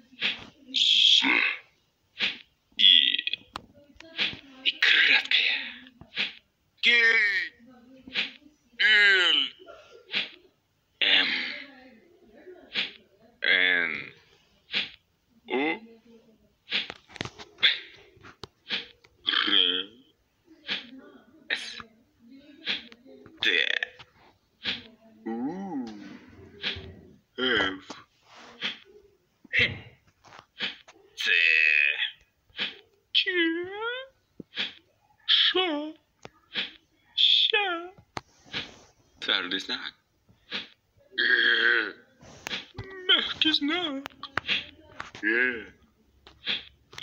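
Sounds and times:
cartoon voice burping: 1.2 - 1.6, 8.8 - 10.4, 11.0 - 11.6, 15.5 - 15.8, 18.7 - 20.0, 25.2 - 27.9, 40.5 - 43.4, 45.2 - 45.8.

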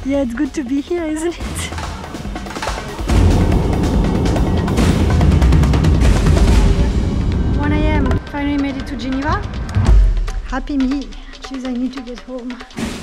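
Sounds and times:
background music with heavy bass: 0.6 - 11.5.

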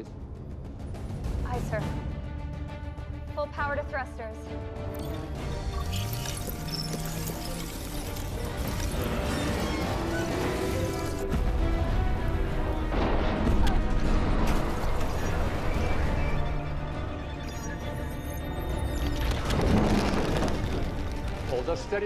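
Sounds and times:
dramatic film score: 0.0 - 22.0.

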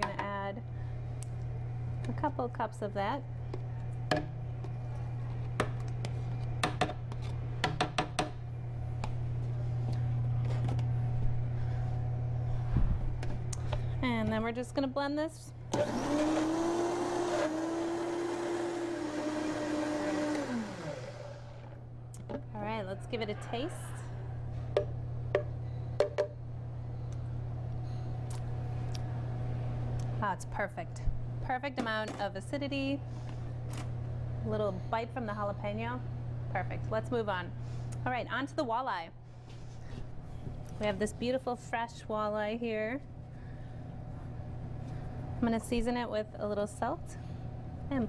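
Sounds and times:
steady low hum: 0.0 - 15.8, 18.9 - 48.0
blender knock: 15.7 - 21.5.

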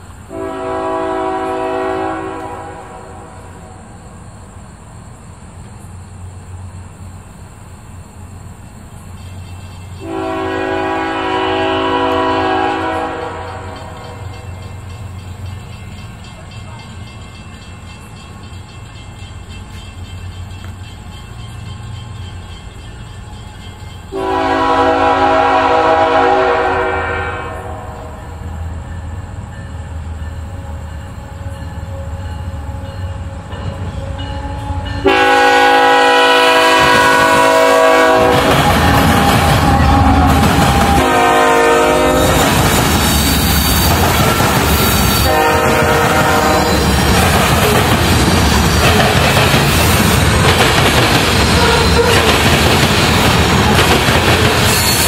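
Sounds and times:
train wheels on rails: 0.0 - 55.0
locomotive air horn blasts: 0.3 - 3.8, 10.0 - 14.4, 24.1 - 28.4, 31.8 - 42.5, 43.3 - 47.0, 51.5 - 52.3.

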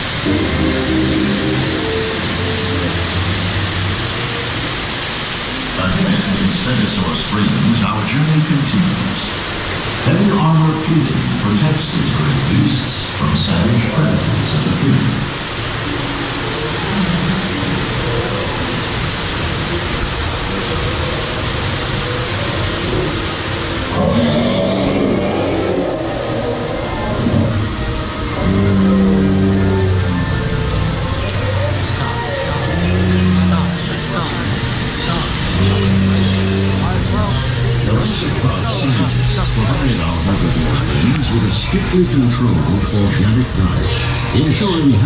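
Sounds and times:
loud rushing noise: 0.0 - 45.0
soundtrack music with low notes: 0.0 - 45.0.

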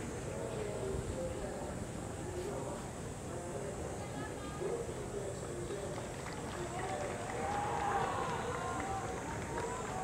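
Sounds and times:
distant people talking: 0.0 - 10.0
outdoor background noise: 0.0 - 10.0.

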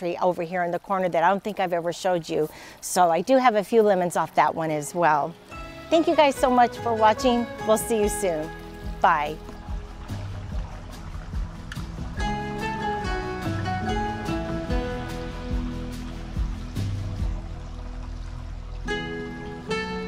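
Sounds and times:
gentle plucked melody: 5.3 - 20.0.

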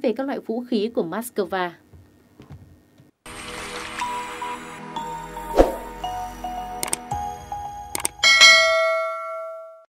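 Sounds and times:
bell ding: 8.2 - 9.9.

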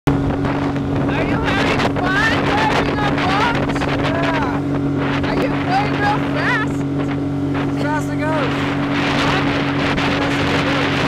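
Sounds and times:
rushing water: 0.1 - 11.0
speedboat engine droning: 0.1 - 11.0
wind: 0.1 - 11.0.

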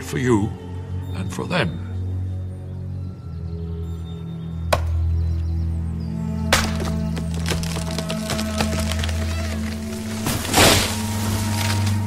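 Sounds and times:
low music drone: 0.0 - 12.0
wooden knocking and creaking: 6.6 - 10.1.

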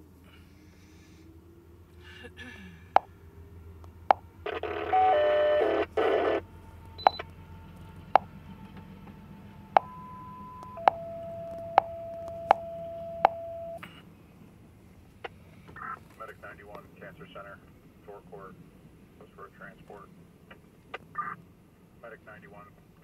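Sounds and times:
low steady rumble: 0.0 - 23.0
scanner radio two-tone page: 4.1 - 7.3, 9.8 - 13.8, 15.7 - 18.6, 20.9 - 21.4
dispatcher speaking on radio: 15.8 - 18.6, 19.2 - 20.2, 22.0 - 22.8.

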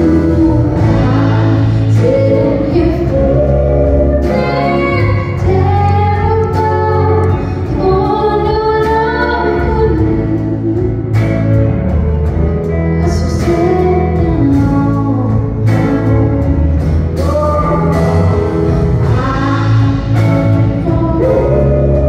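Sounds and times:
woman singing: 0.0 - 11.5, 13.0 - 22.0
band with guitars and drums: 0.0 - 22.0.

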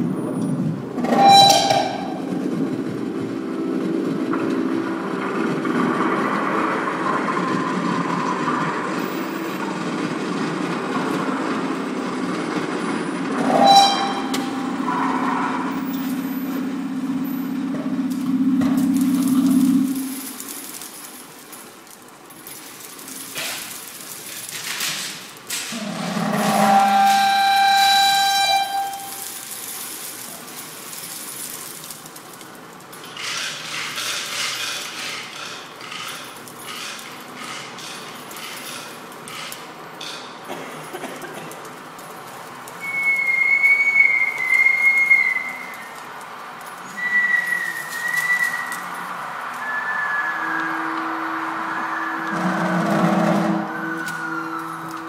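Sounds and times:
low drone: 0.7 - 21.2, 48.0 - 55.0.

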